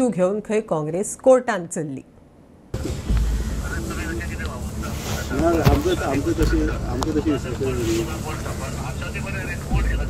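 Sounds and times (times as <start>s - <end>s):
low rumble: 2.7s - 5.3s
men talking: 2.8s - 10.0s.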